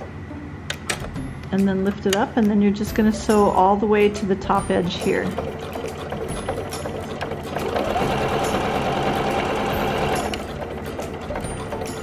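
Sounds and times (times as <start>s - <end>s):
sewing machine stitching: 5.3s - 11.5s.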